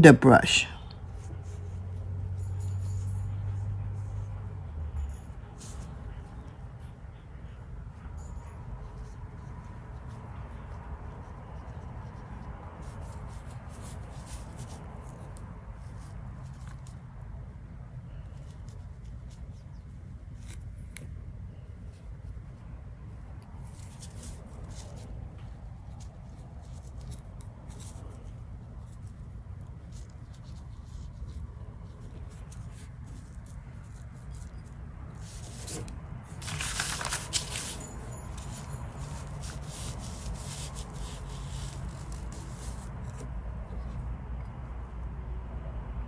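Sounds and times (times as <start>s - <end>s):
brush rubbing on paper: 29.8s - 43.2s
paper sheet rustling: 29.9s - 43.3s.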